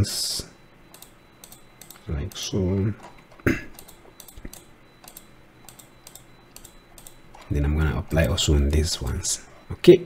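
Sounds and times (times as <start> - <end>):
computer mouse clicks: 0.9 - 2.4, 3.0 - 7.5
keyboard clicks: 0.9 - 7.5.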